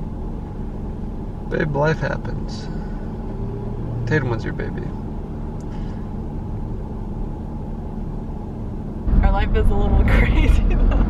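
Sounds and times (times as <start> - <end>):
car engine and road rumble: 0.0 - 11.0.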